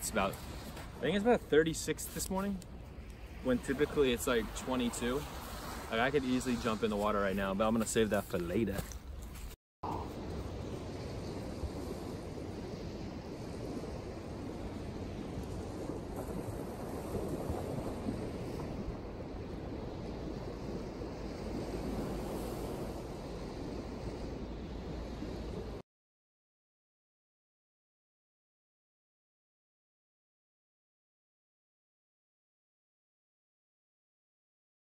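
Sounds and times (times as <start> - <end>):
small waves washing on shore: 0.0 - 25.8
wind buffeting microphone: 0.0 - 25.8.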